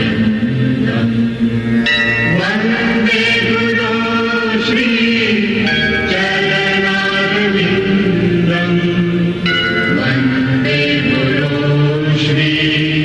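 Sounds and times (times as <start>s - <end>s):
devotional chanting: 0.0s - 13.0s
sustained steady tones: 0.0s - 13.0s.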